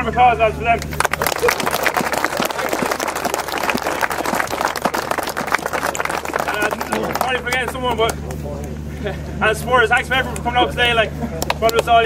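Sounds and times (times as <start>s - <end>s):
crowd applauding: 0.8s - 8.5s.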